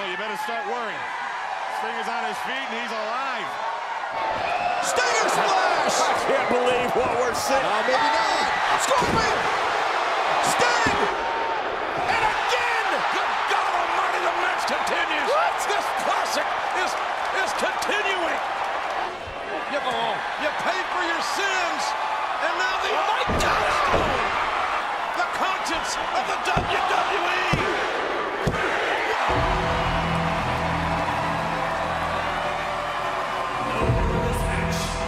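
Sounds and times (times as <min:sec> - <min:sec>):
music: 0:29.3 - 0:35.0.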